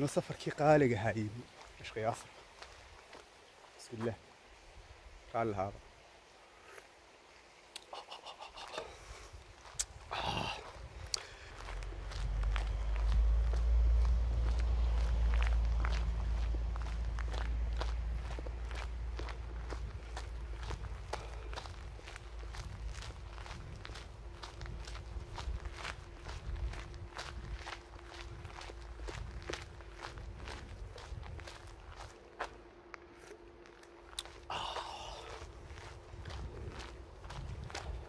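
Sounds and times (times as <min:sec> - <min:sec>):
footsteps on dirt path: 0:00.0 - 0:04.6, 0:08.6 - 0:38.0
faint steady hum: 0:00.0 - 0:38.0
low rumble: 0:10.0 - 0:32.8.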